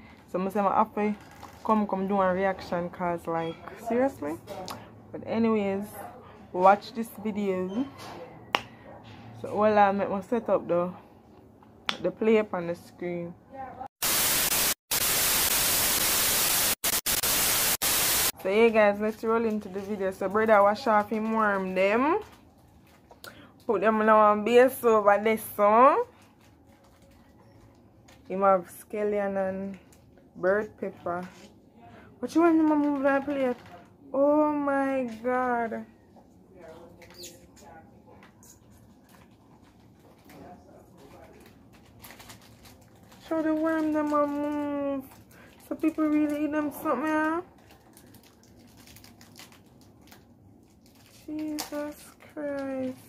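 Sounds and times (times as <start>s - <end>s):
tv static hiss: 14.0s - 18.3s.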